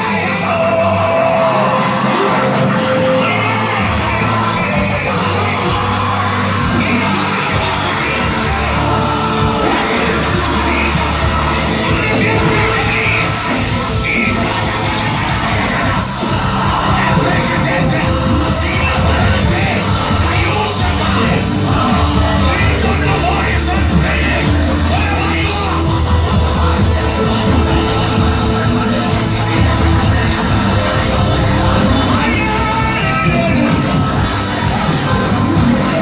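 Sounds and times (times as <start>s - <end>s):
gospel band playing through speakers: 0.0s - 36.0s
people singing and shouting: 0.0s - 36.0s.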